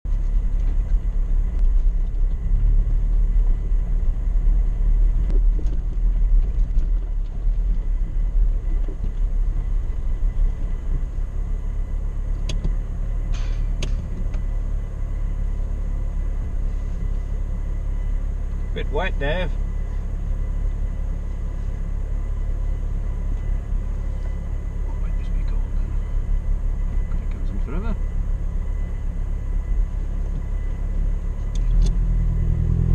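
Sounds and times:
vehicle rumbling over stony track: 0.0s - 32.9s.

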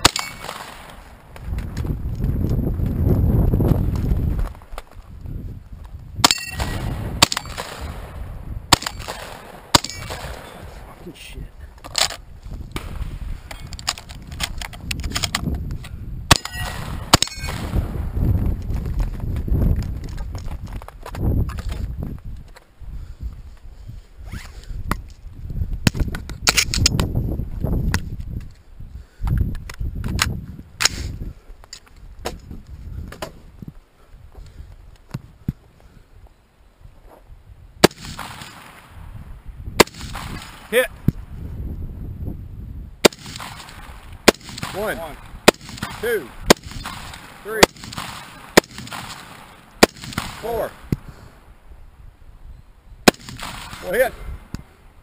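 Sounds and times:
shotgun shots: 0.0s - 1.1s, 6.2s - 10.7s, 16.3s - 18.0s, 37.8s - 39.0s, 39.8s - 40.9s, 43.0s - 50.9s, 53.0s - 54.2s
rifle shots cracking: 0.0s - 1.2s, 6.2s - 10.8s, 16.3s - 17.9s, 37.8s - 39.0s, 39.8s - 40.9s, 43.0s - 50.9s, 53.0s - 54.2s
handling and movement noise: 8.8s - 17.6s, 18.4s - 22.8s.

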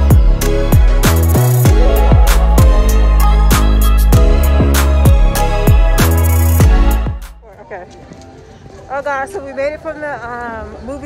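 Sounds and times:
outdoor background noise: 4.6s - 11.0s.

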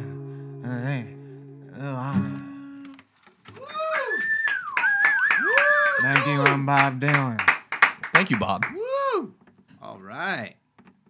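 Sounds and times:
song with acoustic guitar and voices: 0.0s - 3.2s
people clapping: 2.9s - 8.8s
people whooping: 3.5s - 6.6s, 8.7s - 9.3s
whistle: 3.9s - 6.3s.

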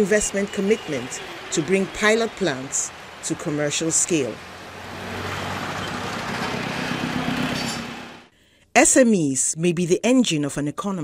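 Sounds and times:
road noise: 0.0s - 8.3s
vehicle engines running: 0.0s - 8.3s.

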